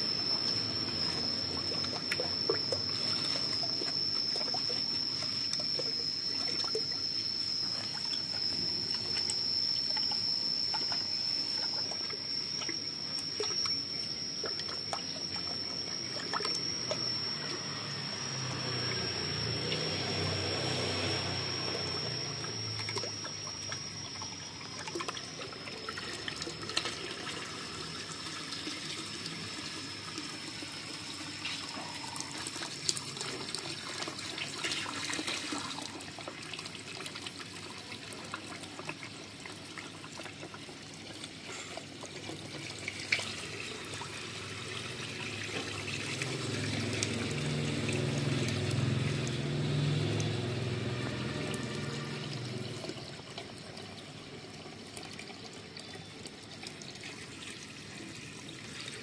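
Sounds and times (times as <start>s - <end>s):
hose water pouring into pond: 0.0s - 59.0s.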